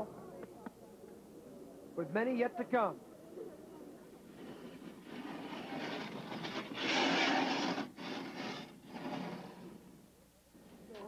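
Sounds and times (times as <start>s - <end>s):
bobsled runners rushing on ice: 4.4s - 9.9s.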